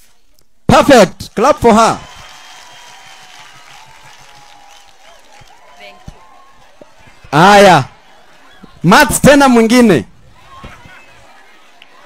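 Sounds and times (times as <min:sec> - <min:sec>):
crowd applause: 0:01.3 - 0:09.5, 0:10.3 - 0:12.0.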